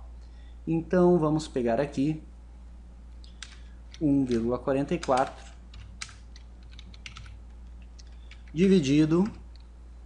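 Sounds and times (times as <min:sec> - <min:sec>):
faint low hum: 0:00.0 - 0:10.0
keyboard keystrokes: 0:03.3 - 0:09.7.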